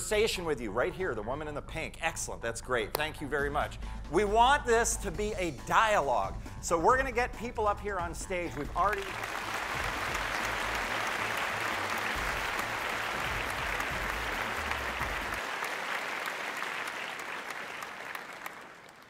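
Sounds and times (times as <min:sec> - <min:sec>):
audience applause: 0:08.9 - 0:19.0.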